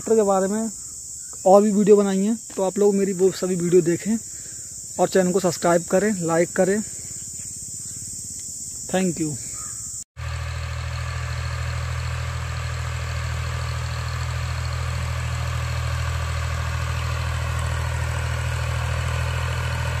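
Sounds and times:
tractor diesel engine running: 9.6 - 20.0.

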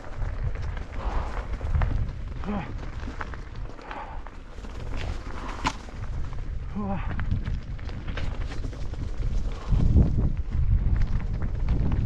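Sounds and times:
bike rattling clicks and knocks: 0.0 - 12.0
bike tyres crunching over gravel: 0.0 - 12.0.

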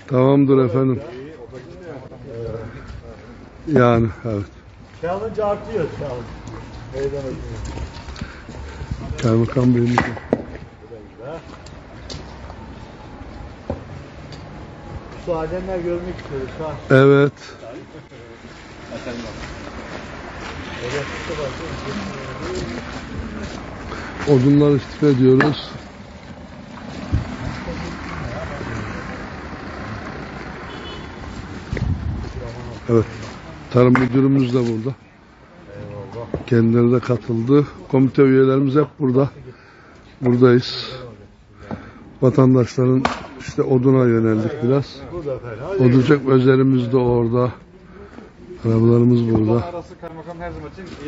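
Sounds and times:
road traffic rushing: 0.0 - 51.0
axe striking firewood: 9.9 - 10.6, 43.0 - 43.4
man's voice: 24.0 - 25.8, 35.8 - 39.6, 42.2 - 47.6, 48.6 - 51.0.

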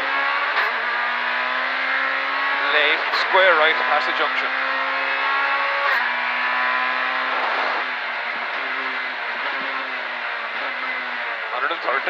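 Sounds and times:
car engine at high revs: 0.0 - 12.0
gear change: 0.0 - 12.0.

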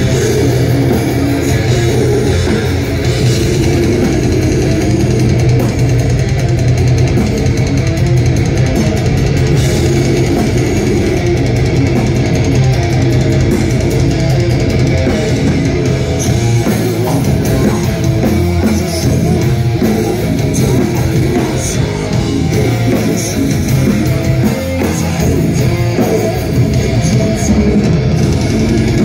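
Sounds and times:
death metal band playing live: 0.0 - 29.0
fast drum and cymbal strokes: 0.0 - 29.0.

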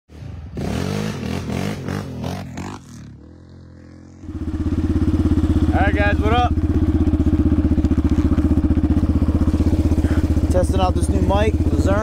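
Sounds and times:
quad engine revving and idling: 0.6 - 12.0.

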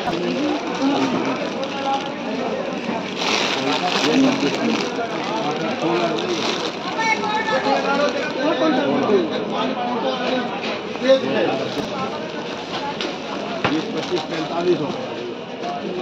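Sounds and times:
plastic packaging rustling: 0.0 - 15.4
people talking: 0.0 - 16.0.

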